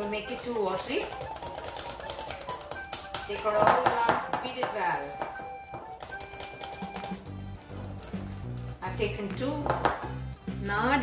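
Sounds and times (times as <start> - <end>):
background music with bass line: 6.8 - 11.0.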